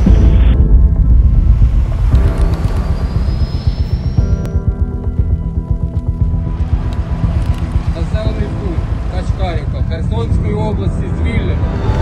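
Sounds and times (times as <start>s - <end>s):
boat engine running: 0.1s - 12.0s.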